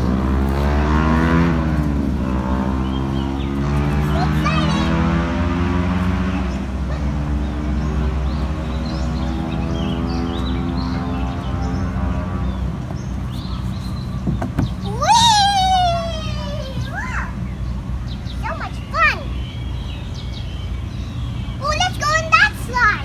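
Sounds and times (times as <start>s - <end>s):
vehicle engine droning: 0.0s - 23.0s
knocks: 14.2s - 14.8s
child's high-pitched call: 14.8s - 17.4s, 18.4s - 19.4s.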